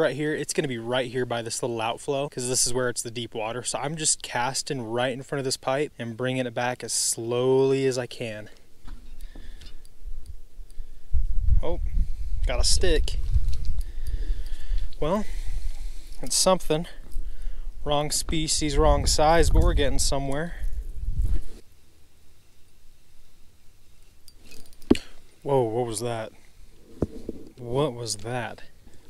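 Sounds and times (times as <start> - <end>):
low rumble of handling noise: 2.6 - 21.8.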